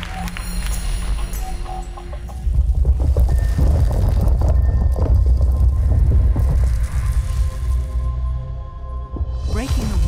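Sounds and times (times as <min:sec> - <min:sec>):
deep low rumble: 0:02.6 - 0:10.0.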